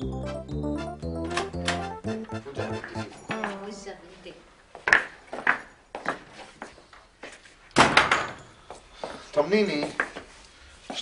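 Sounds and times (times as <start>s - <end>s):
wooden door banging shut: 7.8s - 8.4s.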